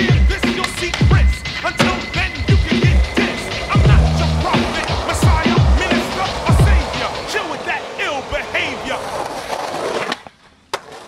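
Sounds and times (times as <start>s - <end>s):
skateboard clack: 0.0s - 11.0s
skateboard wheels rolling on asphalt: 0.0s - 11.0s.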